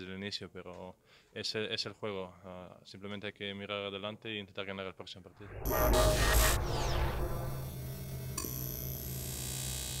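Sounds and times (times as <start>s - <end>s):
high shimmering tone: 5.4s - 8.3s
steady low hum: 5.4s - 8.8s.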